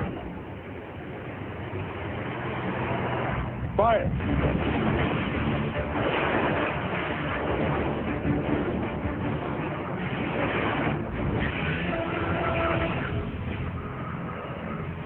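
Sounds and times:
missile volley roar: 2.5 - 15.0.

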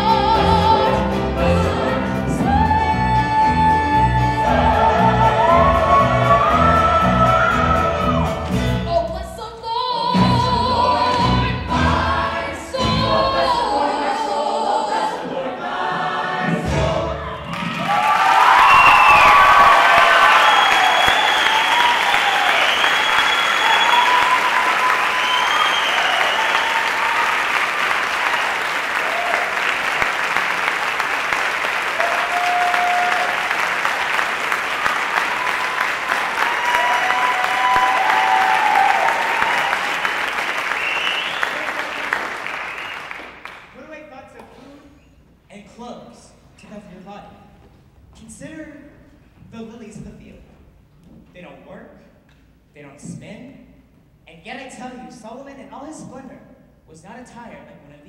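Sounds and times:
singing with band accompaniment: 0.0 - 17.5
audience applause: 17.4 - 43.7
cheers and whoops: 17.5 - 27.6, 28.2 - 29.7, 32.0 - 33.6, 35.2 - 42.0.

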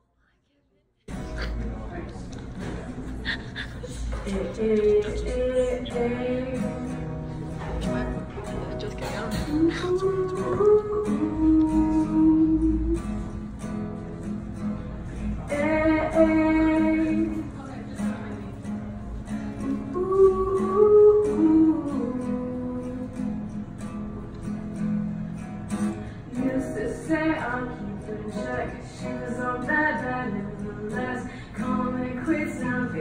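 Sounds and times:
acoustic guitar strumming: 1.1 - 33.0
woman singing wordless notes: 4.0 - 7.2, 8.8 - 13.5, 15.4 - 18.3, 19.5 - 23.6, 26.2 - 33.0.

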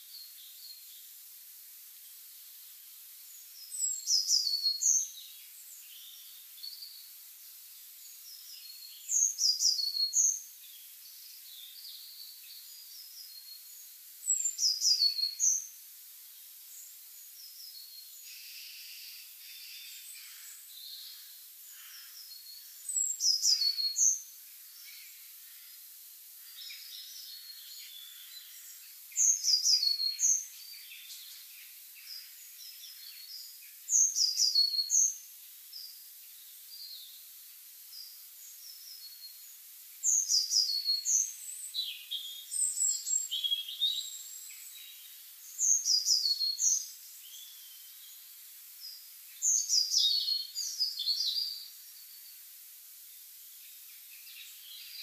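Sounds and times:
songbirds singing: 0.0 - 1.4, 2.0 - 55.0
faint bird chirps: 3.2 - 55.0.

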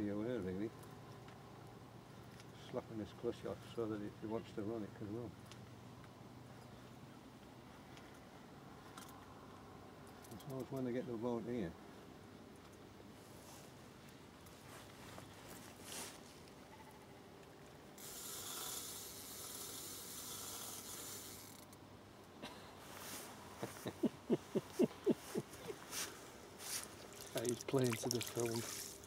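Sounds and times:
fishing reel ratchet clicks: 18.0 - 21.7
fishing reel whirring hiss: 18.0 - 21.7, 28.6 - 29.0.

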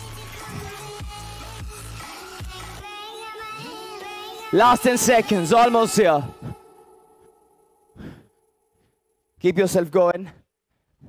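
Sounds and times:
man breathing out hard: 7.9 - 8.4.

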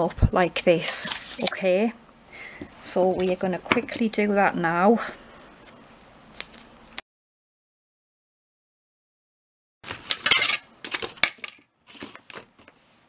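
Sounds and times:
tape and card rustling: 0.9 - 1.6, 5.6 - 7.0, 11.9 - 12.8.

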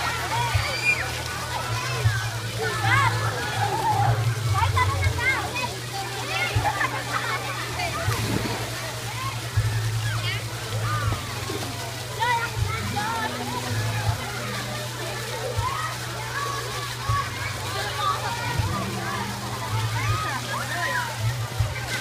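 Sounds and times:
children calling and chattering: 0.0 - 22.0
pool water splashing: 0.0 - 22.0.

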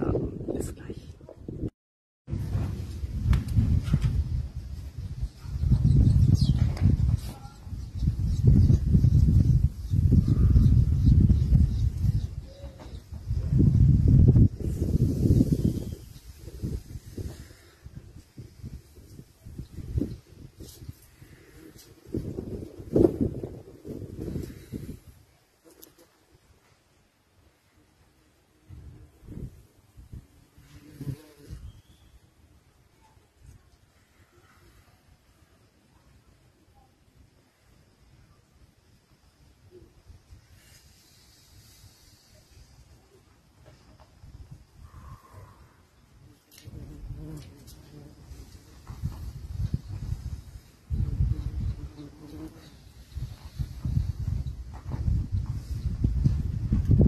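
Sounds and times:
wind rumbling on microphone: 0.0 - 1.7, 2.3 - 25.4, 28.6 - 32.3, 39.7 - 57.0
flying insect buzzing: 25.6 - 26.2, 28.7 - 32.0, 45.0 - 54.2.

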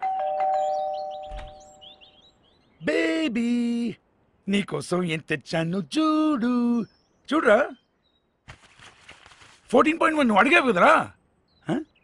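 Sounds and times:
two-note doorbell chime: 0.0 - 1.8
birds chirping: 0.0 - 12.0.

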